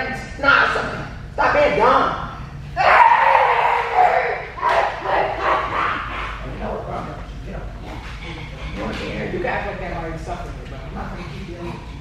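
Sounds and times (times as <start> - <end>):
woman imitating dog yelps: 2.8 - 6.0.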